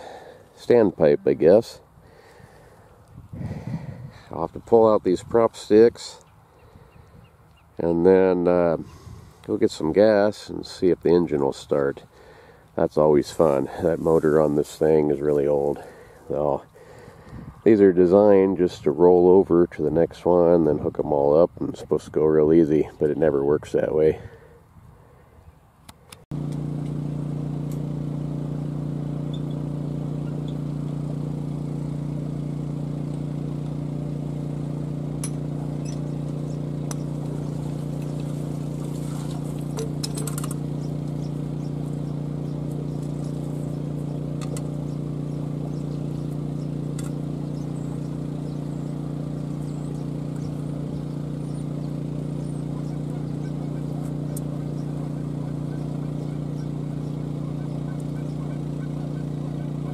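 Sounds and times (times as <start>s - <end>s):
motor humming: 26.3s - 59.9s.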